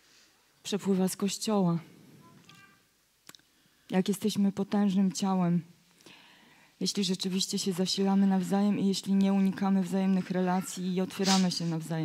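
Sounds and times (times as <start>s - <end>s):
woman speaking: 0.6s - 1.9s, 3.9s - 5.7s, 6.8s - 12.0s.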